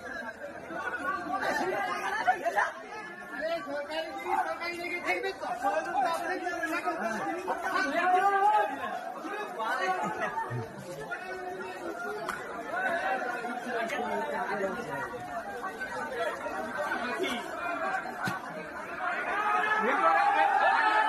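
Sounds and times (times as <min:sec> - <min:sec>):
group of people chattering: 0:00.0 - 0:21.0.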